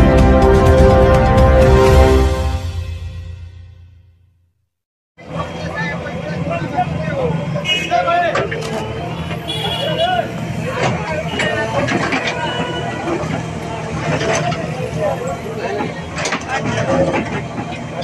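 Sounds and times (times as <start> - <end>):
bystanders' voices: 5.2 - 18.0
diesel engine running: 5.2 - 18.0.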